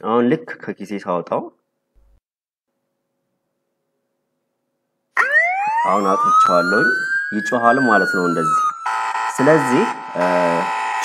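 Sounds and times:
phone siren alarm wailing: 5.2s - 11.0s.

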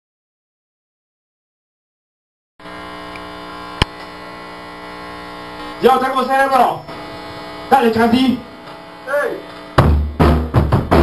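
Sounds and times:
guitar amplifier hum and buzz: 2.6s - 11.0s.

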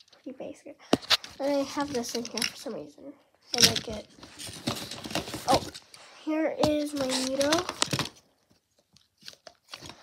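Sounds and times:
plastic toys rustling and clicking: 0.0s - 2.9s, 3.5s - 10.0s.

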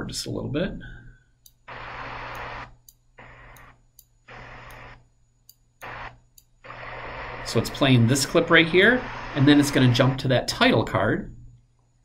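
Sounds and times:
choppy hiss-like playback: 1.7s - 5.0s, 5.8s - 11.6s.

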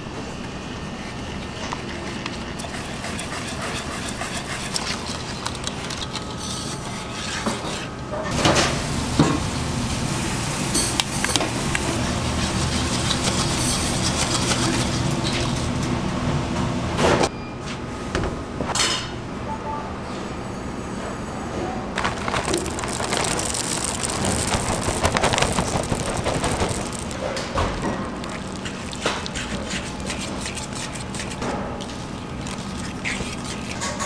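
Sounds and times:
wire whisk scraping a bowl: 0.8s - 7.9s, 12.0s - 15.7s, 23.9s - 34.0s
gas burner roaring: 8.3s - 12.9s, 22.0s - 30.0s.

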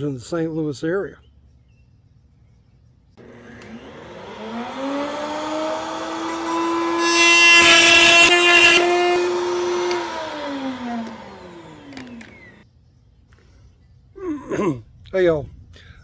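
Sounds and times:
power tool cutting wood: 3.2s - 12.6s
power tool motor running: 3.2s - 12.6s.

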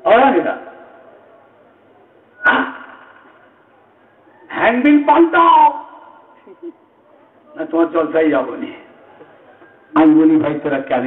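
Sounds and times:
man preaching with echo: 0.0s - 0.8s, 4.5s - 6.2s, 7.6s - 8.8s.

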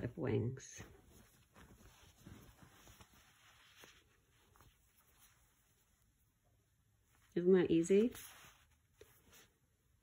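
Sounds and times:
cloth rustling: 0.0s - 10.0s.

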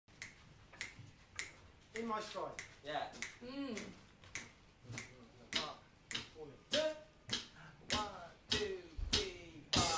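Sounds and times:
finger snaps: 0.2s - 8.0s.

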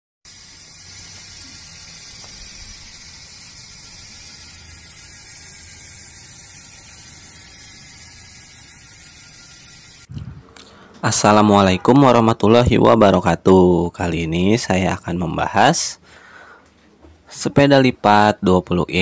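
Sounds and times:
steady high hiss: 0.3s - 11.5s.

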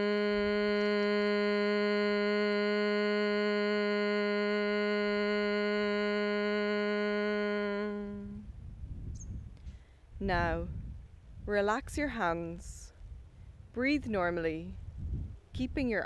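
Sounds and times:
man humming on low pitch: 0.0s - 9.6s.

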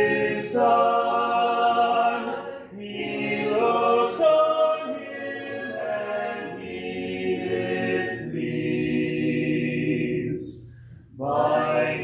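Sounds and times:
congregation singing a hymn: 0.0s - 12.0s.

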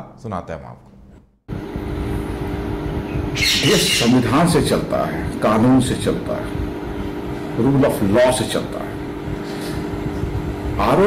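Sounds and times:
faint background hum: 0.0s - 11.0s
steady low rumble: 1.5s - 11.0s.

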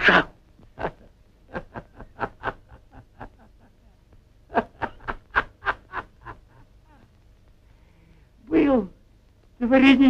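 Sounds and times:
man laughing: 0.0s - 3.9s, 4.5s - 7.1s.

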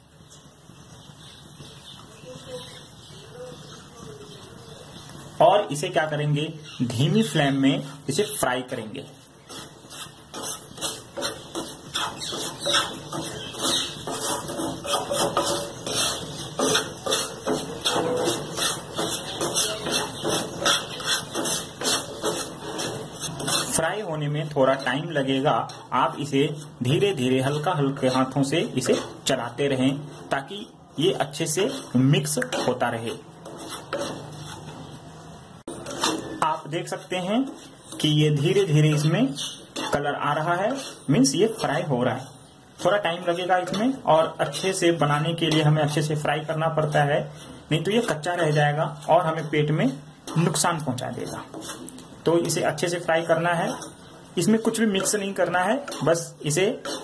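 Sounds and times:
wooden spatula scraping a wok: 5.0s - 57.0s.

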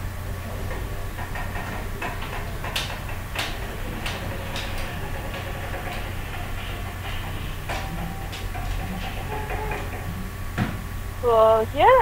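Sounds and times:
steady low hum: 0.0s - 12.0s
sharp clicks and knocks: 0.5s - 11.0s.

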